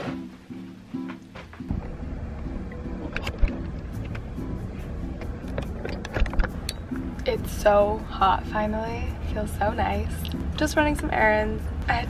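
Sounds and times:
background music: 0.0 - 12.0
handling knocks and clicks: 5.2 - 6.7.

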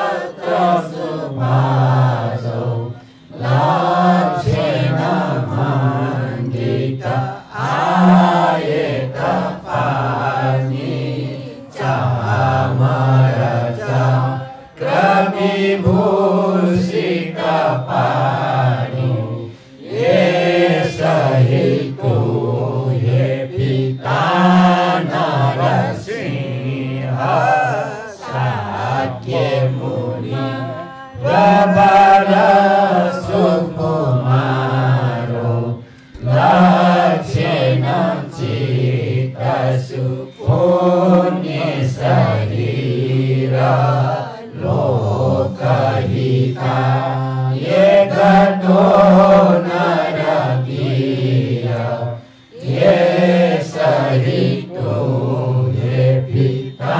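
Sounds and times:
group chanting in unison: 0.0 - 56.9.

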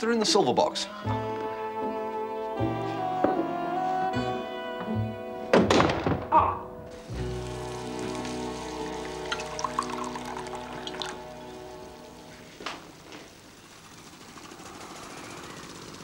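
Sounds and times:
background music: 0.0 - 13.0
loud knocks and clatter: 5.5 - 6.3
gas burner hissing: 6.9 - 16.0.

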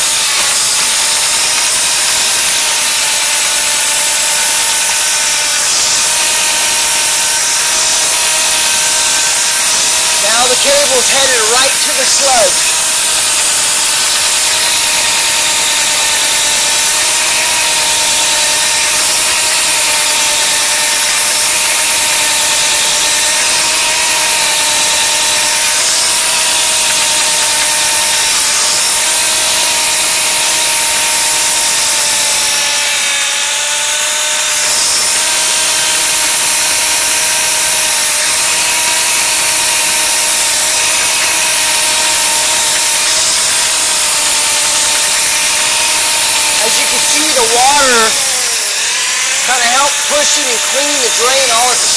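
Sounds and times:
drain snake machine running: 0.0 - 51.9.

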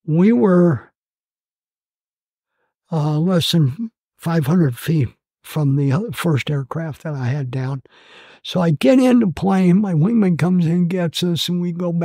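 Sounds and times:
man talking: 0.0 - 0.9, 2.9 - 12.0
faint breath: 7.9 - 8.4.

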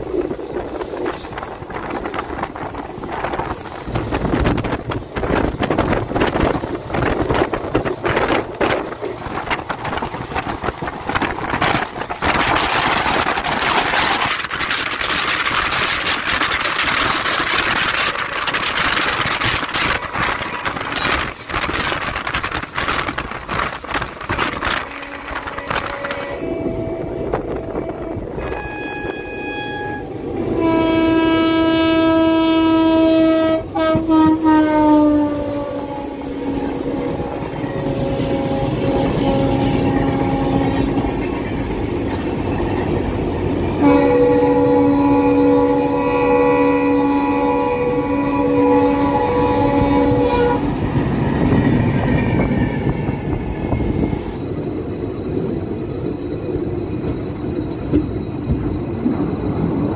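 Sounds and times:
moving train rumble and clatter: 0.0 - 59.9
train horn blasts: 24.5 - 41.2, 43.8 - 50.7.

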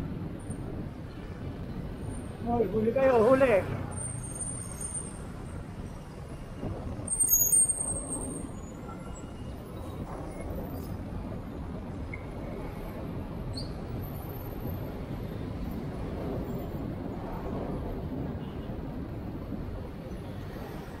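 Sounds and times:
city road traffic: 0.0 - 21.0.

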